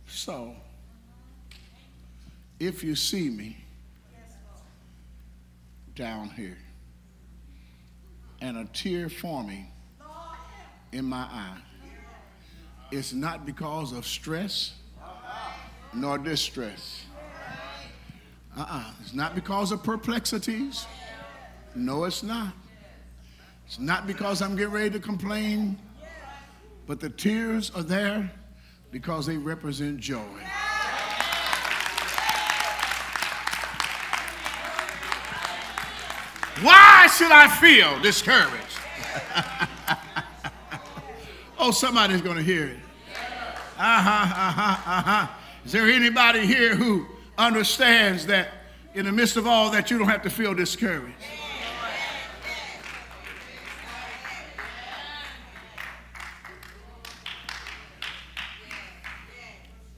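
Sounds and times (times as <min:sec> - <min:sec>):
voices calling out: 0:30.5 - 0:46.0
congregation clapping: 0:30.7 - 0:42.5, 0:43.1 - 0:45.2, 0:51.9 - 0:59.6
handclaps: 0:31.0 - 0:37.8, 0:38.5 - 0:41.0, 0:55.6 - 0:59.3.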